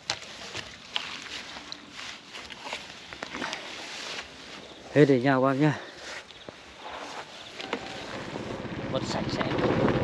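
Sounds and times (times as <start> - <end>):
wind on microphone: 6.8 - 10.0
vehicle rumbling on dirt road: 7.4 - 10.0.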